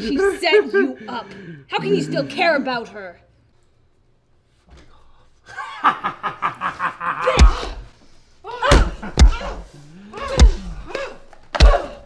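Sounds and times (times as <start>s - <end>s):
crowbar striking body: 7.3s - 7.8s, 8.6s - 12.0s.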